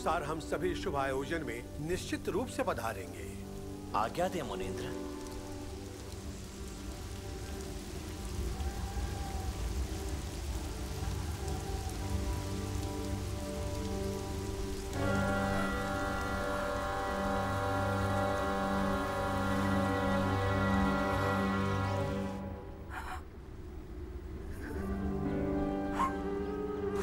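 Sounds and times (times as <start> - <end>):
waterfall rushing: 0.0 - 23.1
soft background music: 0.0 - 27.0.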